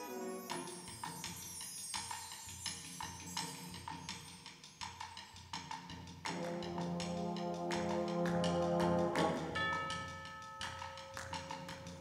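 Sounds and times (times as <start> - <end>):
light percussion tapping: 0.5 - 12.0.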